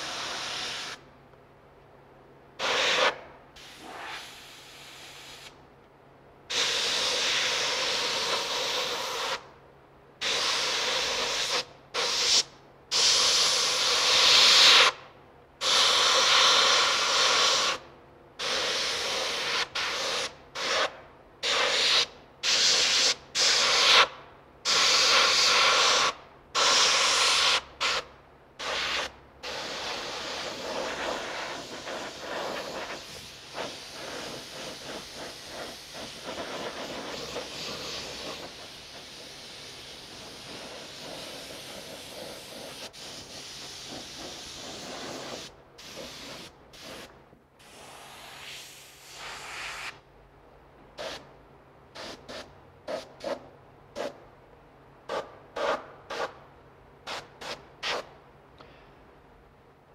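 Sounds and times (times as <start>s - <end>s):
airbrush spraying hiss: 0.0s - 1.0s, 2.6s - 5.6s, 6.5s - 9.5s, 10.2s - 15.0s, 15.6s - 17.8s, 18.4s - 28.0s, 28.6s - 50.0s, 51.0s - 51.2s, 52.0s - 53.4s, 54.0s - 54.2s, 55.1s - 56.3s, 57.1s - 58.1s.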